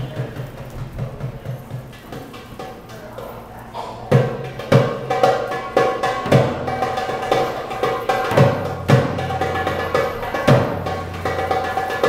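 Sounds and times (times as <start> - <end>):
goblet drum played by hand: 4.0 - 12.0.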